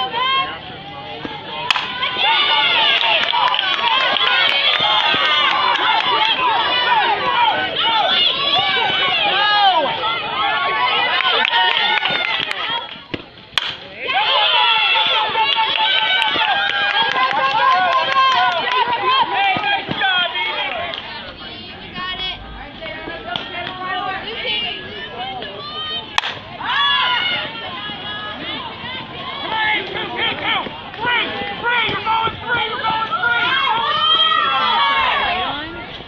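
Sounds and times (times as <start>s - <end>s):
crowd yelling and cheering: 0.0s - 36.0s
sharp crack: 1.7s - 2.0s, 13.1s - 13.9s, 26.2s - 26.4s.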